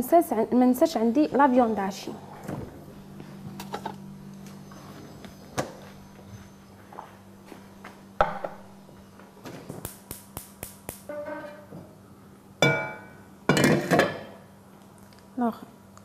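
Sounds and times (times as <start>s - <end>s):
low electrical hum: 0.0s - 16.0s.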